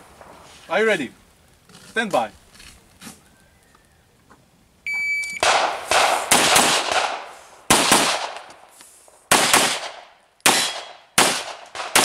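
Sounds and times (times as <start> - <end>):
shot timer beep: 4.9 - 5.4
pistol shots with echo: 5.4 - 8.5, 9.3 - 12.0.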